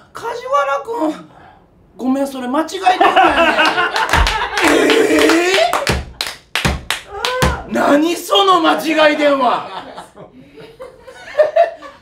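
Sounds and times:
sharp hand claps: 0:03.6 - 0:07.7
man exclaiming in astonishment: 0:04.6 - 0:05.8.

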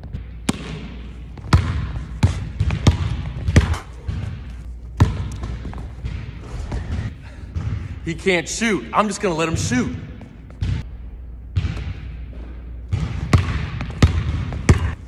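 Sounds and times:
basketball bouncing on wooden floor: 0:00.0 - 0:07.9, 0:09.5 - 0:10.8, 0:11.6 - 0:15.0.

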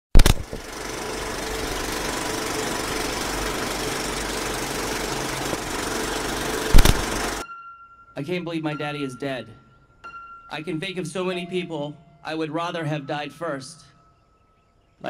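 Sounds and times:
film projector clatter: 0:00.2 - 0:07.4
film projector clicks: 0:00.2 - 0:07.4.

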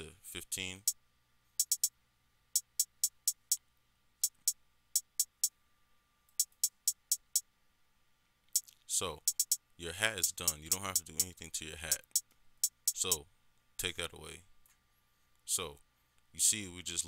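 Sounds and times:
hi-hat ticks: 0:00.8 - 0:01.0, 0:01.6 - 0:03.6, 0:04.2 - 0:05.6, 0:06.3 - 0:07.5, 0:08.5 - 0:13.2.

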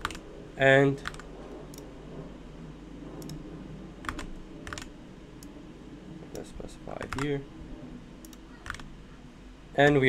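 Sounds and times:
faint low hum: 0:00.0 - 0:10.0
computer keyboard keystrokes: 0:04.1 - 0:04.9, 0:07.0 - 0:07.3.

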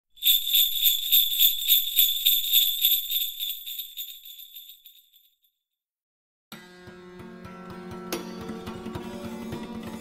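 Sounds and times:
jingle bells shaken: 0:00.1 - 0:05.5.

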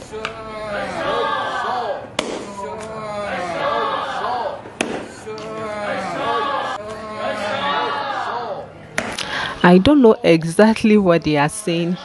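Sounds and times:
people shouting: 0:00.0 - 0:08.7, 0:11.5 - 0:12.0.

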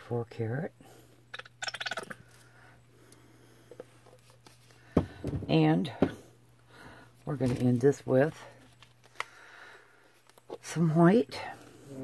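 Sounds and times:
steady low hum: 0:00.0 - 0:12.0
squeeze bottle sputtering paint: 0:01.4 - 0:02.3.

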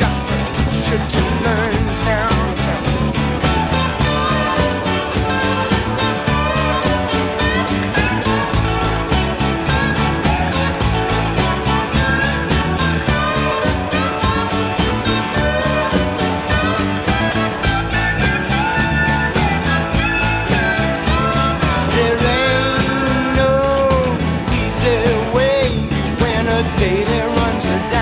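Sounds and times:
bass and drums steady beat: 0:00.0 - 0:28.0
electric guitar lead lines: 0:00.0 - 0:28.0.

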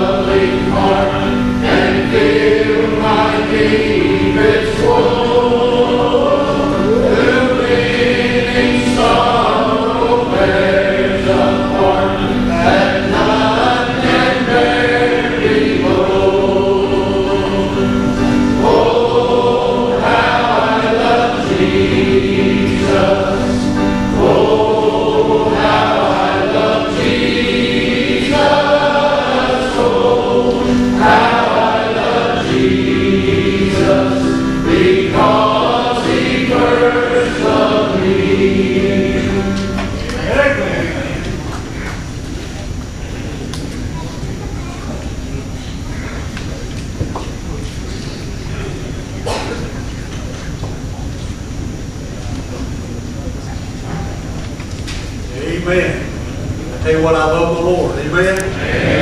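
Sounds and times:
men singing a hymn: 0:00.0 - 0:42.0, 0:56.8 - 0:59.0.

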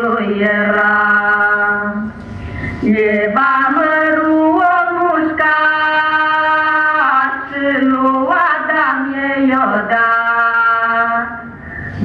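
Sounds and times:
woman singing into a microphone: 0:00.0 - 0:02.1, 0:02.8 - 0:12.0.

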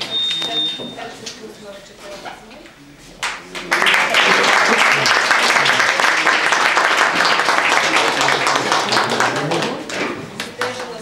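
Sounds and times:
audience applauding: 0:03.6 - 0:10.9.

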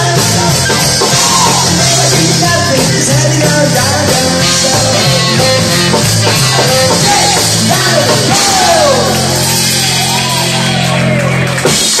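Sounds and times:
rock and roll band: 0:00.0 - 0:12.0.

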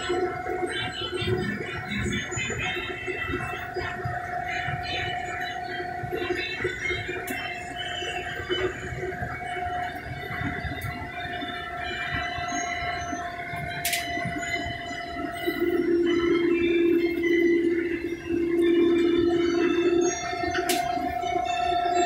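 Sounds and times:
combine harvester running: 0:00.0 - 0:22.0
low hum: 0:03.6 - 0:22.0.

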